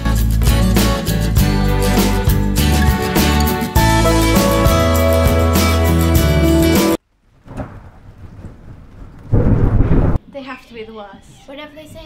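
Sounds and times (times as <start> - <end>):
thunder rumble: 7.3 - 10.2.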